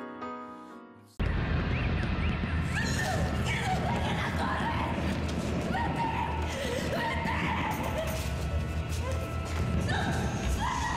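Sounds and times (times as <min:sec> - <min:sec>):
dense rumbling noise: 0:01.2 - 0:07.9.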